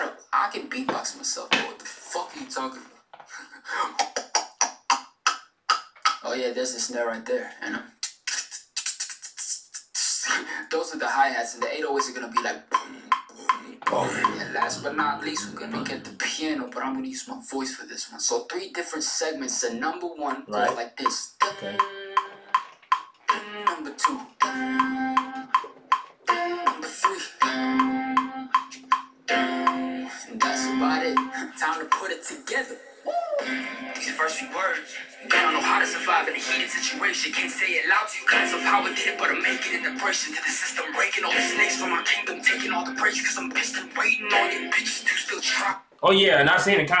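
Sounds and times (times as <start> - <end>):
beatboxed hi-hats: 3.8 - 6.4, 7.9 - 10.7, 11.5 - 16.4, 20.5 - 32.2, 35.3 - 45.7
hummed notes: 13.9 - 16.1, 21.4 - 22.5.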